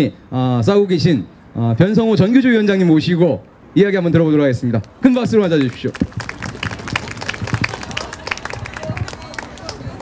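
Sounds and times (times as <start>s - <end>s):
audience applause: 5.6s - 10.0s.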